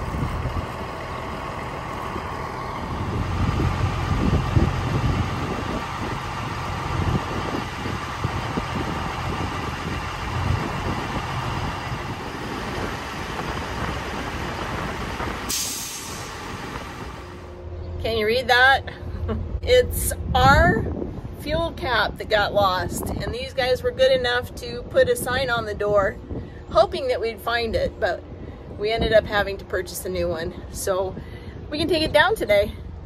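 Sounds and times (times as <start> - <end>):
truck engine rumbling: 0.0 - 33.0
short hiss: 15.5 - 16.4.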